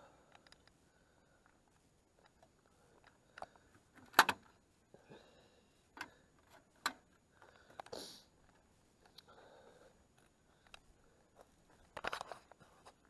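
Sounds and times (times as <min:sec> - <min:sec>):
sharp clicks and knocks: 0:02.2 - 0:04.5.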